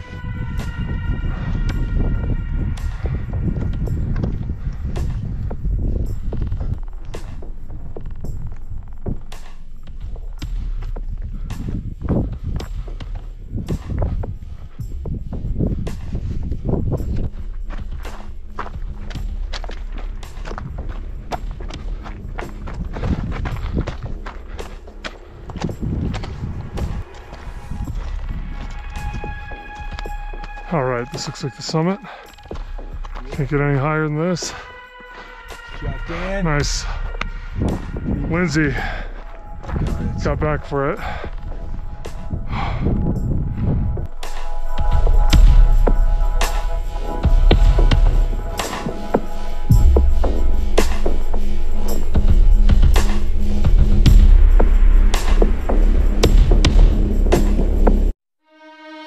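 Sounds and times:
steady low rumble: 0:00.0 - 0:34.5, 0:35.2 - 0:58.2
footsteps on loose rock: 0:15.6 - 0:28.9.

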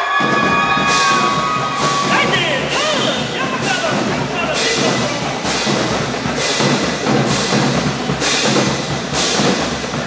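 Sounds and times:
crowd cheering and shouting: 0:00.0 - 0:05.8
drum or cymbal hits: 0:00.0 - 0:10.0
marching band playing: 0:00.0 - 0:10.0.

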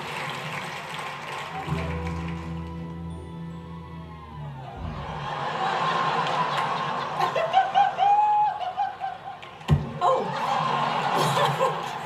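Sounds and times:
audience laughing: 0:04.6 - 0:12.0.

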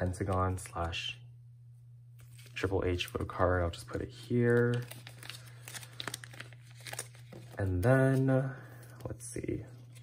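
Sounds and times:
plastic sleeves crinkling: 0:02.2 - 0:10.0.

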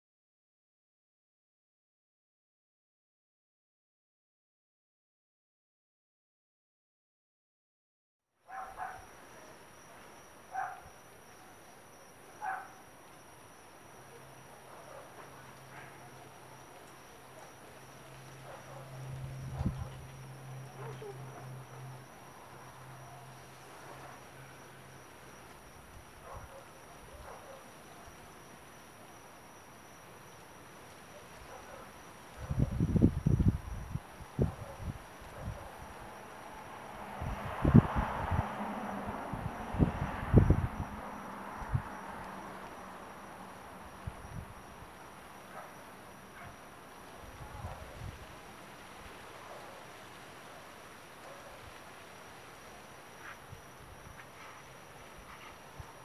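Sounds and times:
faint high insect-like tone: 0:08.4 - 0:56.0
soft rustle: 0:47.1 - 0:56.0.

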